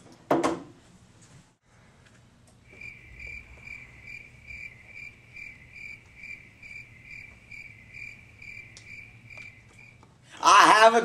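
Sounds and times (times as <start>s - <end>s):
cricket chirping: 2.6s - 10.0s.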